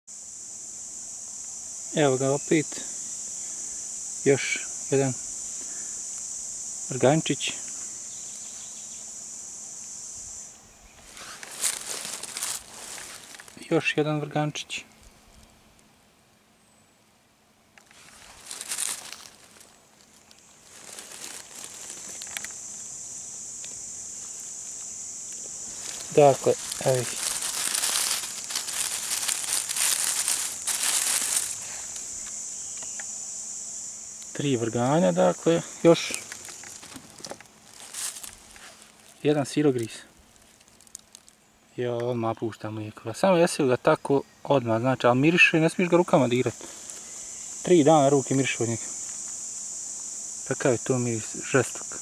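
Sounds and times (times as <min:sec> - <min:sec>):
steady high-pitched hiss: 0:00.1 - 0:52.0
dry leaves rustling and crunching: 0:11.0 - 0:13.7, 0:17.8 - 0:32.3, 0:34.9 - 0:41.4.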